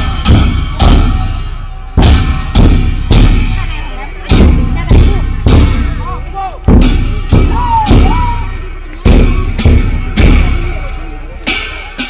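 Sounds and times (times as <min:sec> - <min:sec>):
cymbal crash: 0:00.0 - 0:03.6
large drum strokes: 0:00.0 - 0:12.0.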